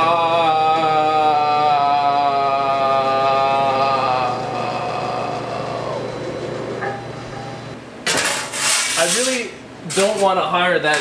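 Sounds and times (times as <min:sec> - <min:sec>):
man wailing on low note: 0:00.0 - 0:06.6.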